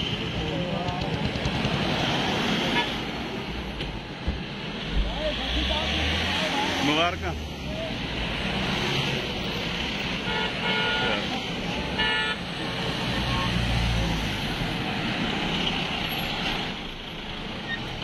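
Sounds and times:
vehicles driving past: 0:00.0 - 0:18.0
vehicle horn blasts: 0:10.2 - 0:11.2, 0:12.0 - 0:12.4.

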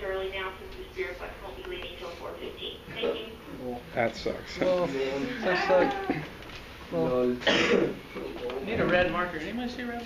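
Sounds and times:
person clearing throat: 0:07.4 - 0:08.0.

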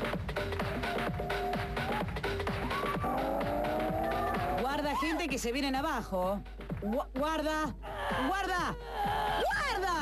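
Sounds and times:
electronic music with drum hits: 0:00.0 - 0:08.4.

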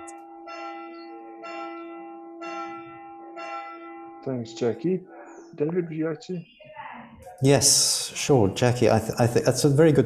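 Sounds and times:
bell ringing: 0:00.0 - 0:05.3.

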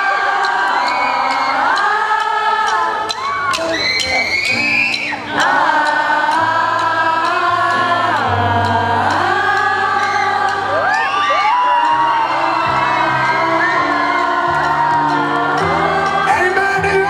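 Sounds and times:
crowd cheering: 0:00.0 - 0:08.2, 0:09.0 - 0:17.0
live pop band: 0:00.0 - 0:17.0.

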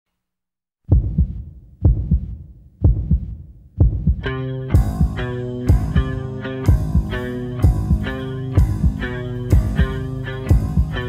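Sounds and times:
heartbeat thumps: 0:00.9 - 0:11.0.

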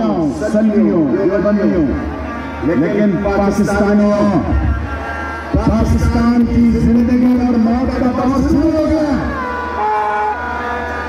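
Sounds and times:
long overlapping steady tones: 0:00.0 - 0:11.0.

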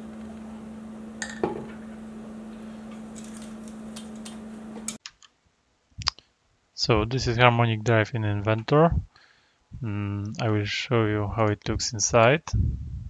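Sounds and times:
steady low hum: 0:00.0 - 0:05.0, 0:06.8 - 0:13.0.

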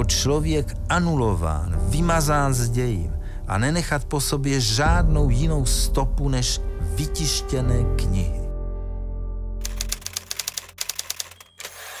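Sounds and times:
typewriter keys clacking: 0:09.6 - 0:12.0
typewriter rasping sweep: 0:09.6 - 0:12.0.

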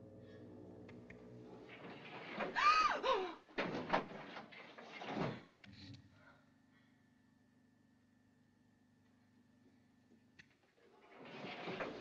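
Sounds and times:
metal gate rattling slides: 0:01.4 - 0:02.6, 0:03.6 - 0:05.4, 0:11.0 - 0:12.0.

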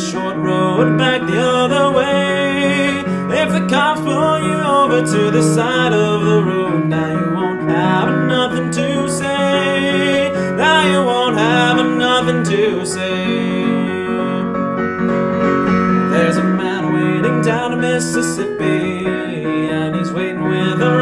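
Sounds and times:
person singing folk song: 0:00.0 - 0:14.8, 0:16.0 - 0:21.0
piano chords: 0:00.0 - 0:21.0.

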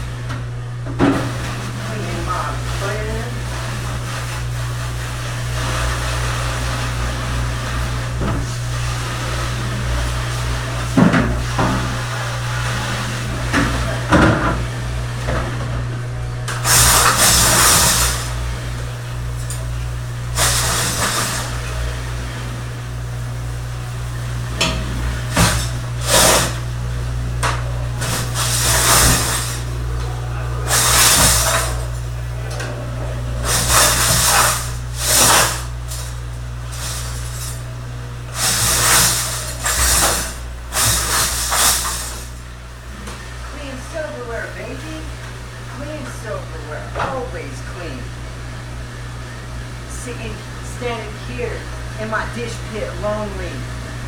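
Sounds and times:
steady low hum: 0:00.0 - 0:54.0
spray hose spraying water: 0:16.6 - 0:18.4, 0:20.3 - 0:21.7, 0:25.1 - 0:27.2, 0:28.0 - 0:29.9, 0:30.6 - 0:32.3, 0:33.4 - 0:42.5.

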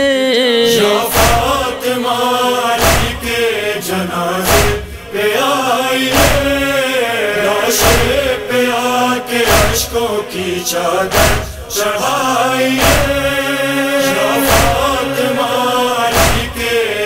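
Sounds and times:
person chanting wordless lament: 0:00.0 - 0:17.0
deep thumps: 0:02.8 - 0:03.2, 0:04.5 - 0:05.0, 0:09.5 - 0:09.9, 0:11.1 - 0:11.6, 0:12.8 - 0:13.2, 0:16.2 - 0:16.6.

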